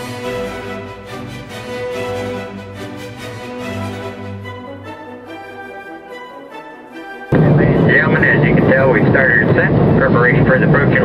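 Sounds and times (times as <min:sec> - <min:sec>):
soft orchestral music: 0:00.0 - 0:11.0
jet cabin noise: 0:07.3 - 0:11.0
voice over cabin pa: 0:07.4 - 0:11.0.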